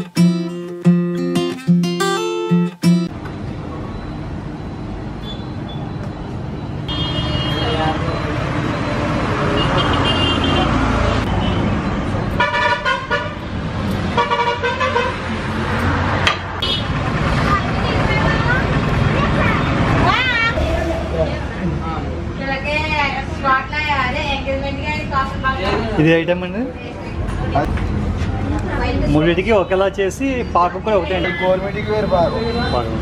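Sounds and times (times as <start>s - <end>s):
rumble of passing traffic: 2.9s - 33.0s
vehicle horns honking: 6.9s - 8.0s, 9.4s - 11.8s, 12.4s - 13.4s, 14.1s - 15.2s, 16.6s - 16.9s, 31.0s - 33.0s.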